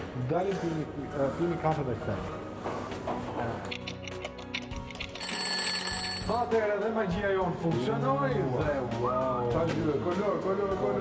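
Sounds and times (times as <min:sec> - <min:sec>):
background music: 0:00.0 - 0:11.0
alarm clock ticking: 0:05.2 - 0:06.5
alarm bell ringing: 0:05.2 - 0:06.6.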